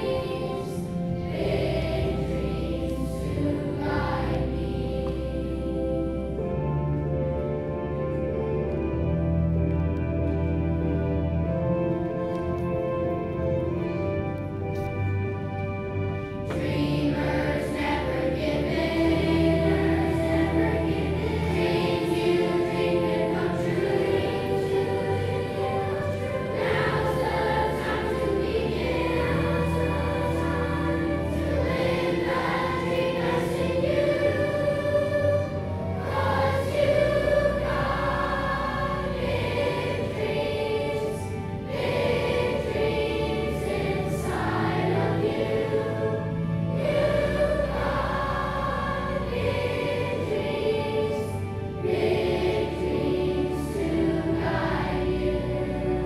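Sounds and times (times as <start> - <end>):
children's choir singing: 0.0 - 56.0
sustained low instrumental notes: 0.0 - 56.0.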